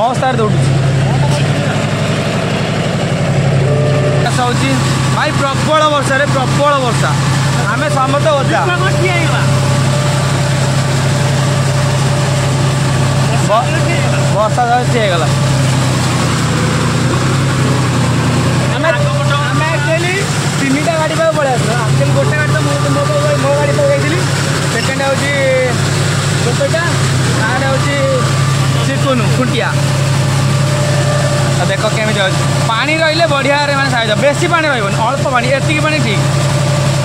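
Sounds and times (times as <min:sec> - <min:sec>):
tractor diesel engine running: 0:00.0 - 0:37.0
man talking: 0:04.0 - 0:09.7, 0:13.2 - 0:15.5, 0:18.6 - 0:29.9, 0:31.5 - 0:36.3.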